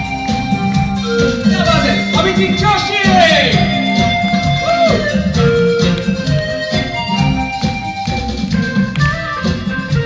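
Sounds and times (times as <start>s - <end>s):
band playing instrumental music: 0.0s - 10.0s.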